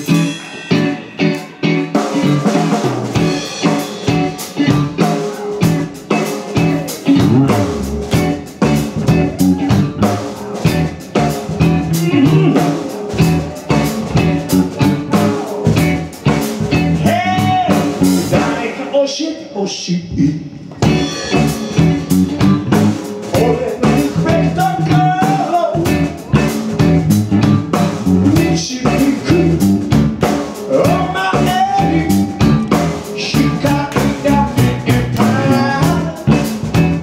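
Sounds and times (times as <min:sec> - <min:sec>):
steady drum beat: 0:00.0 - 0:18.8, 0:20.8 - 0:37.0
electric guitar: 0:00.0 - 0:19.0, 0:20.6 - 0:37.0
bass guitar: 0:00.0 - 0:19.1, 0:20.0 - 0:37.0.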